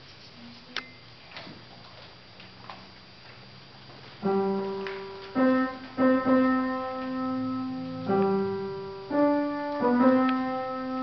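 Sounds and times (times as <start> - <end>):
faint steady hum: 0.0 - 11.0.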